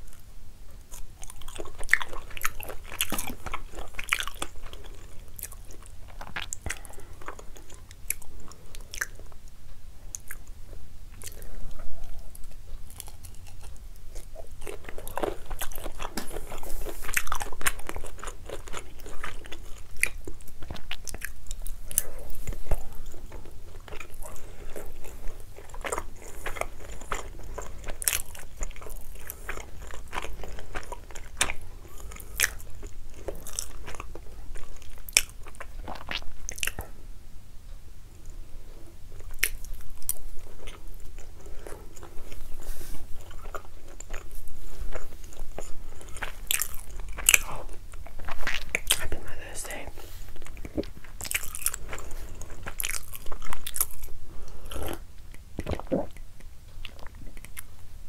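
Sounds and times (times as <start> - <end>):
close chewing with wet mouth sounds: 0.0 - 37.0, 38.2 - 58.0.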